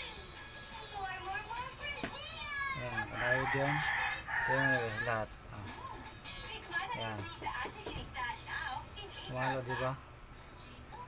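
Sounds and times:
rooster crowing: 2.9s - 5.1s.

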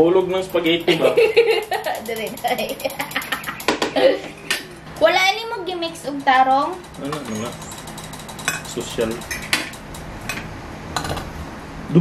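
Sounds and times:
fork clinking against glass bowl: 6.2s - 10.4s.

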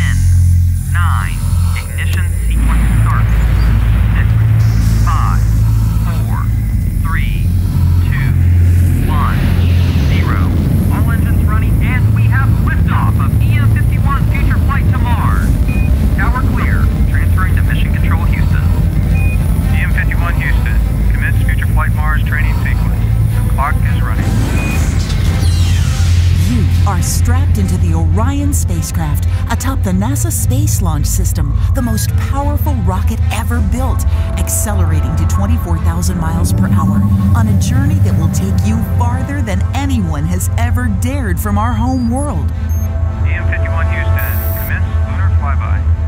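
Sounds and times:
radio voice chatter: 0.0s - 24.6s, 26.5s - 45.8s
rocket engine roar: 0.0s - 46.0s
short beeps: 15.6s - 16.0s, 18.4s - 19.8s, 35.8s - 39.0s, 41.8s - 43.0s, 44.2s - 44.7s.

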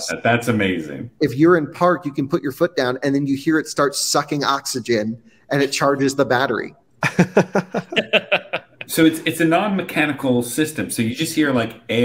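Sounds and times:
men laughing: 7.0s - 9.2s.

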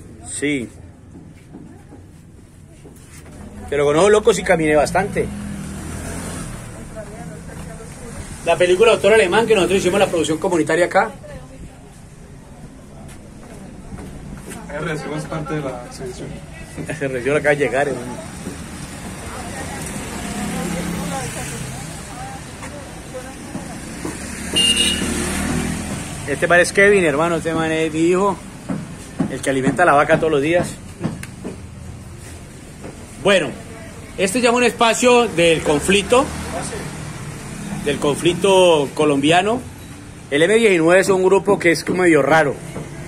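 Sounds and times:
faint distant voices: 0.0s - 24.8s
vehicle engine passing by: 4.4s - 10.4s, 17.9s - 27.2s, 35.1s - 39.0s.

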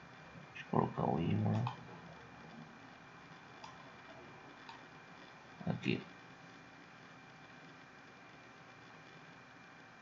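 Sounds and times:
computer mouse clicks: 1.5s - 1.8s, 3.6s - 3.9s, 4.6s - 4.9s.

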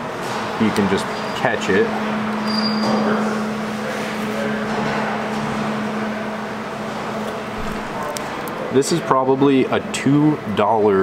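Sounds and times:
low hum of machinery: 0.0s - 11.0s.

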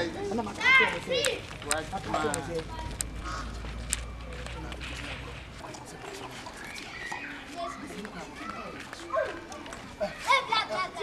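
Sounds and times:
quick footsteps: 0.5s - 10.5s
people talking: 4.3s - 11.0s.

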